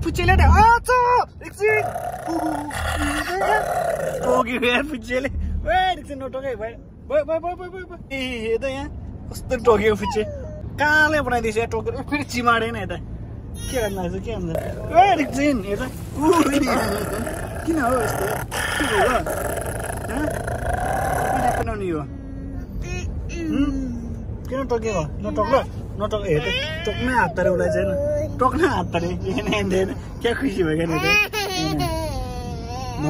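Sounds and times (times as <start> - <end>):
road noise inside car: 0.0 - 33.0
playful voice sounds: 1.6 - 4.6, 16.2 - 24.1
toddler growling: 1.7 - 4.6, 14.6 - 15.5, 16.2 - 21.7.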